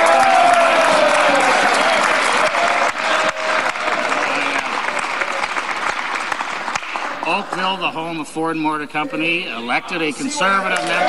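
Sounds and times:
crowd applauding: 0.0 - 8.3, 9.2 - 11.0
voices calling out: 7.0 - 11.0.

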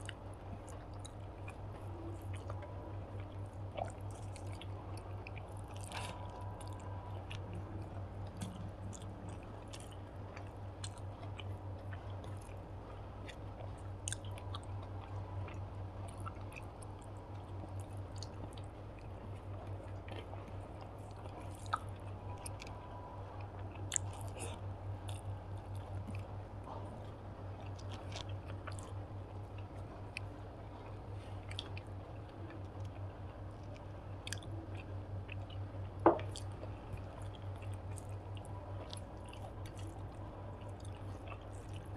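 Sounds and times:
low hum: 0.0 - 41.9
person chewing food: 0.0 - 41.9.

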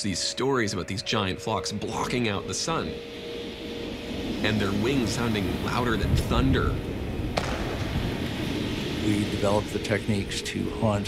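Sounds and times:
steady rushing of wings: 1.1 - 11.0
sharp crack: 7.3 - 9.8.

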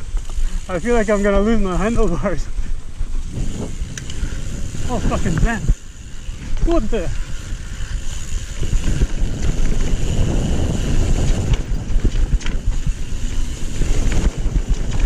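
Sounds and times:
bike tyres and frame rattling: 0.0 - 15.0
wind buffeting microphone: 0.0 - 15.0.

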